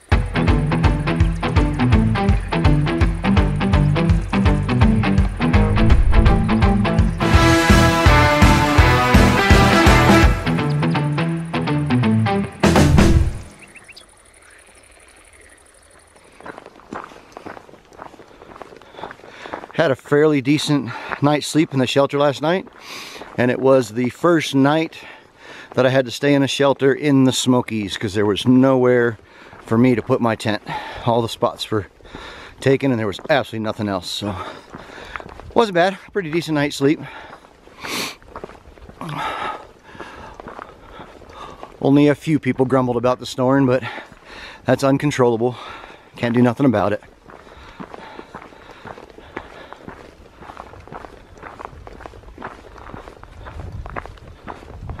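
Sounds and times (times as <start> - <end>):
footsteps on dirt trail: 0.0 - 8.5, 13.2 - 55.0
loud music hit: 5.4 - 10.9, 12.6 - 13.5
person breathing: 18.3 - 19.7, 22.8 - 23.3, 25.0 - 25.8, 29.2 - 29.6, 32.0 - 32.6, 34.4 - 35.3, 37.0 - 38.2, 39.0 - 41.8, 43.9 - 44.7, 45.6 - 46.2, 47.3 - 50.7.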